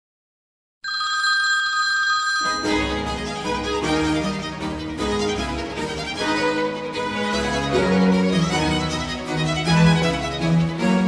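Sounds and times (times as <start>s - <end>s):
telephone ringing: 0.8s - 2.9s.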